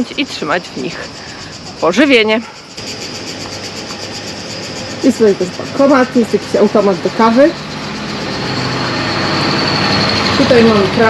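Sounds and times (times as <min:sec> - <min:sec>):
machine running with whine: 0:00.0 - 0:11.0.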